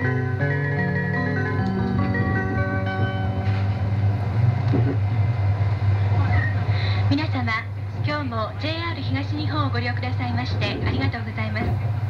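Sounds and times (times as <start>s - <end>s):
train car running hum: 0.0s - 12.0s.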